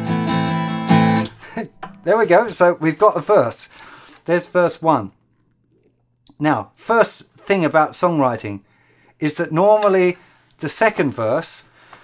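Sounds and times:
acoustic guitar strumming chords: 0:00.0 - 0:03.1.

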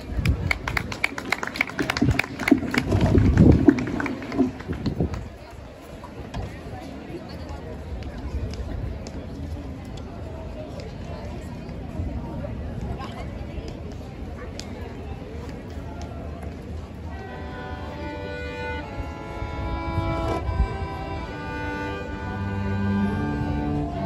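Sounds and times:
outdoor murmur: 0:00.0 - 0:24.0.

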